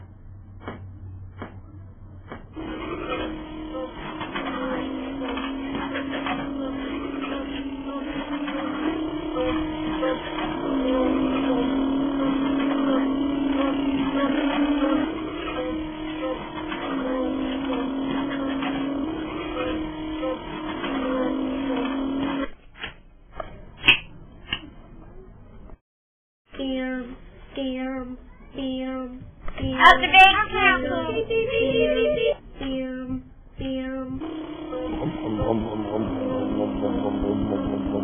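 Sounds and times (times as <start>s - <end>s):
toy cart engine drone: 2.6s - 22.5s, 34.2s - 38.0s.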